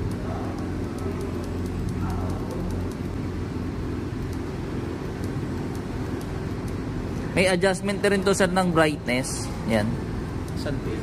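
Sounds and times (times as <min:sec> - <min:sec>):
scooter engine idling: 0:00.0 - 0:11.0.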